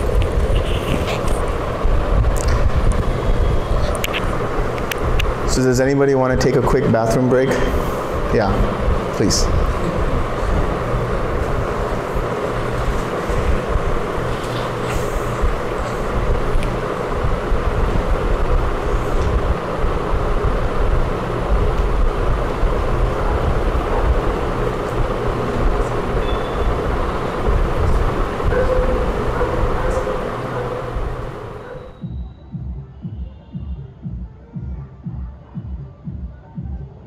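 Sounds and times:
loud rumbling: 0:00.0 - 0:33.2.

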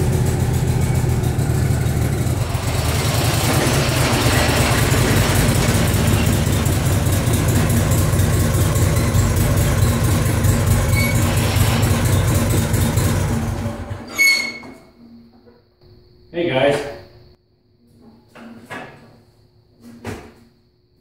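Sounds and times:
garden tractor engine running: 0:00.0 - 0:14.0.

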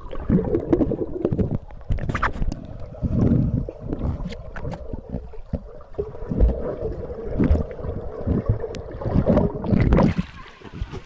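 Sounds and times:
water churning underwater: 0:00.0 - 0:11.0.

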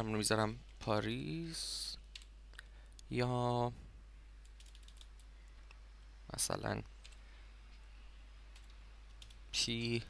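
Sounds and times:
computer keyboard keystrokes: 0:04.4 - 0:05.3.

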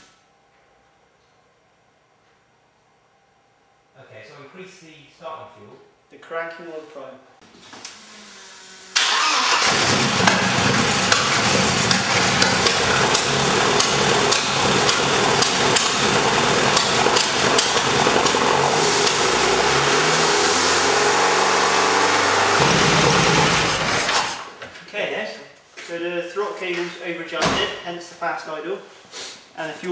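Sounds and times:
car engine starting: 0:07.8 - 0:24.6
car engine fast idle with misfire: 0:09.0 - 0:20.0, 0:22.2 - 0:24.5.

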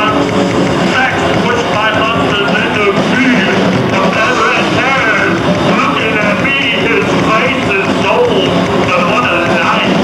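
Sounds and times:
distorted electric guitars: 0:00.0 - 0:10.0.

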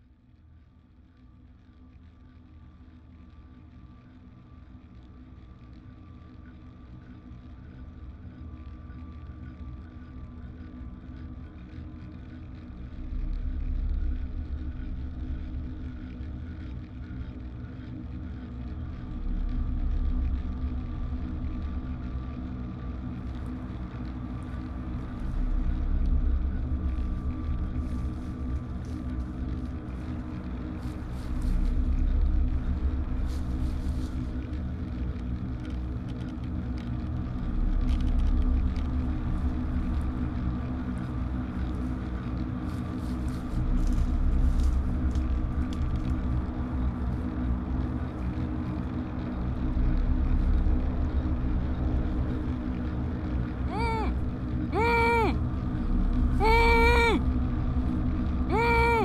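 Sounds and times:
low rumbling ambient drone: 0:00.0 - 0:54.8, 0:55.4 - 0:56.4, 0:57.2 - 0:58.5.

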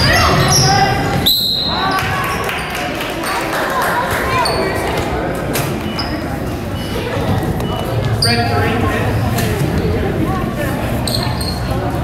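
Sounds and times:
referee's whistle blast: 0:01.2 - 0:01.8.

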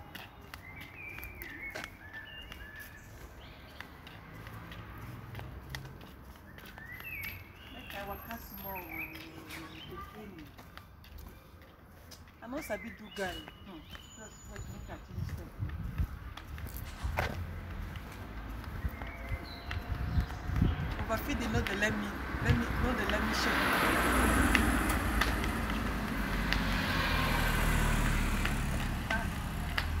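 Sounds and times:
footsteps on pavement: 0:00.0 - 0:30.0
street low rumble: 0:00.0 - 0:30.0.

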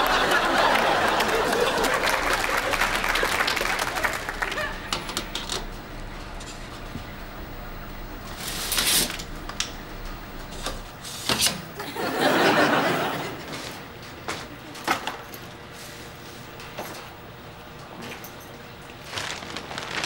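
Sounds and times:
audience laughter: 0:00.0 - 0:05.3, 0:11.8 - 0:14.8.

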